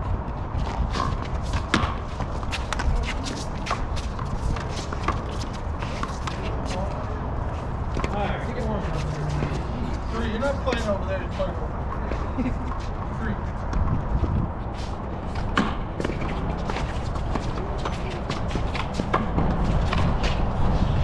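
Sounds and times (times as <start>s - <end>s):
steady low rumble: 6.4s - 21.0s.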